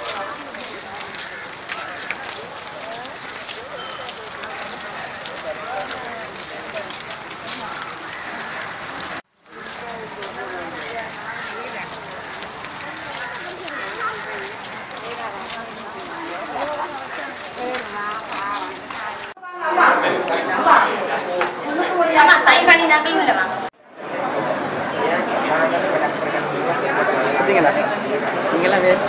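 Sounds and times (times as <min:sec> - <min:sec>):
footsteps on road: 0:00.0 - 0:19.4
crowd talking: 0:00.0 - 0:29.0.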